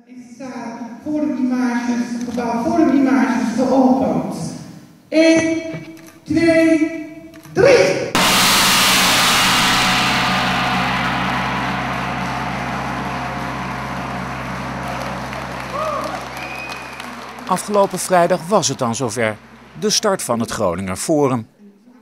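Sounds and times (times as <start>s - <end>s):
gong struck and ringing: 8.2s - 19.8s.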